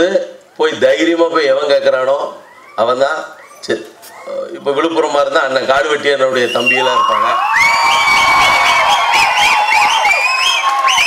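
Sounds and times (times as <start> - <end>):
audience cheering with shrill calls: 6.4 - 11.0.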